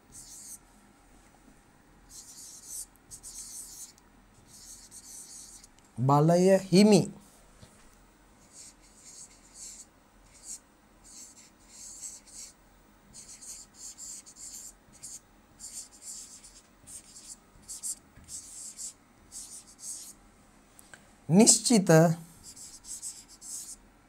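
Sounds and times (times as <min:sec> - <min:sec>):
pen scratching on paper: 0:00.1 - 0:00.6, 0:02.1 - 0:05.7, 0:08.4 - 0:12.6, 0:13.2 - 0:20.2, 0:22.4 - 0:23.8.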